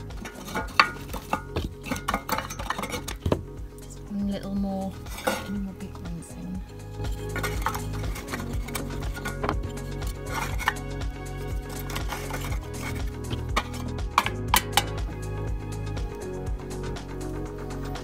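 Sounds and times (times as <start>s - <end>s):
wooden blocks knocking on metal: 0.0s - 3.6s, 7.1s - 15.2s
background music: 0.0s - 18.0s
metal lid clicks: 13.3s - 15.0s.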